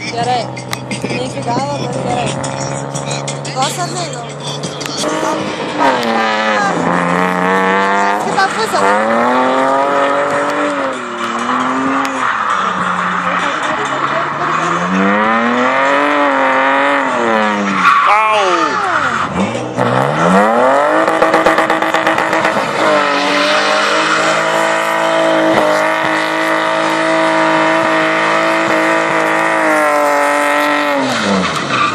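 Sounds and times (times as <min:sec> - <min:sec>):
car engine revving hard: 0:00.0 - 0:31.9
tyre squeal: 0:11.0 - 0:19.6, 0:22.8 - 0:28.5, 0:29.6 - 0:31.9.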